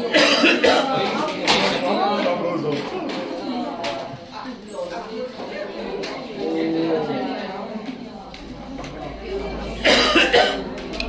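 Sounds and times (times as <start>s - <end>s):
quiet background talk: 0.0s - 11.0s
person coughing: 0.1s - 0.9s, 9.8s - 10.6s.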